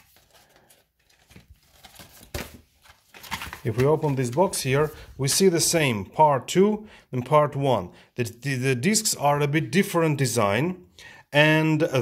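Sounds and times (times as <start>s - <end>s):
packaging rustling: 0.0s - 5.5s.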